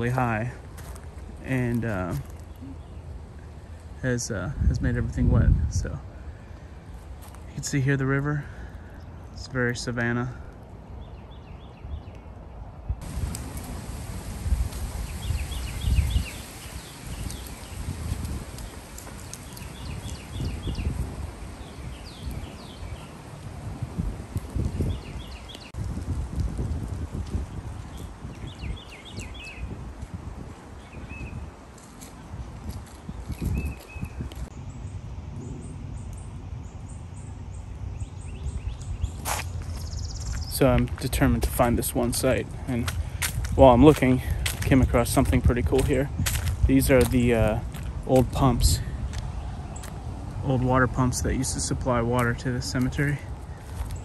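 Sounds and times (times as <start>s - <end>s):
songbirds chirping: 0.0s - 25.9s, 27.2s - 54.0s.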